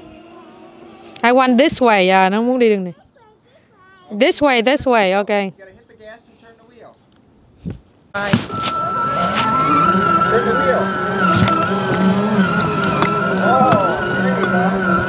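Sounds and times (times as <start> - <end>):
electronic racing car sound effects: 8.2 - 15.0
steady high tone: 8.2 - 15.0.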